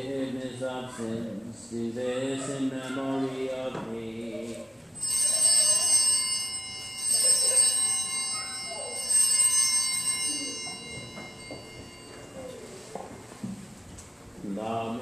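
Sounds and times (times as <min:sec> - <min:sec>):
altar bells ringing: 0:05.0 - 0:13.0.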